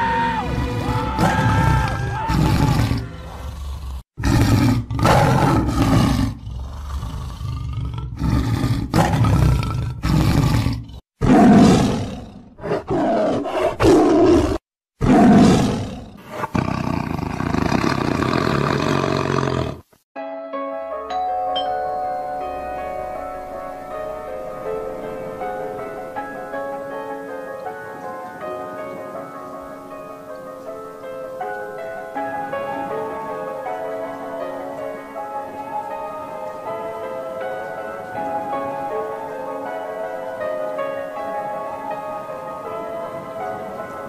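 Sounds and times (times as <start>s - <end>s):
music: 0.0s - 2.3s, 20.2s - 44.0s
big cat roaring and snarling: 0.4s - 19.9s.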